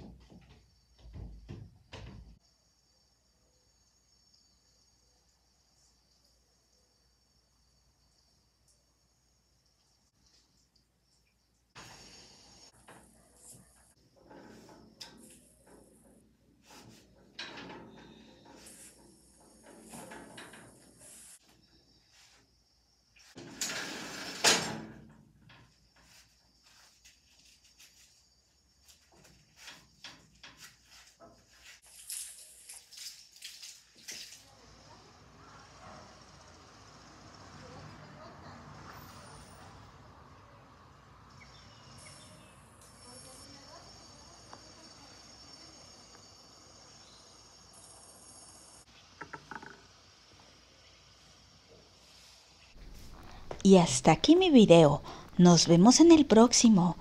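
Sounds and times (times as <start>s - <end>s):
steady hiss: 11.7s - 14.0s, 16.6s - 21.4s, 45.4s - 53.6s
small knocks and scrapes: 12.7s - 22.5s, 25.5s - 34.4s.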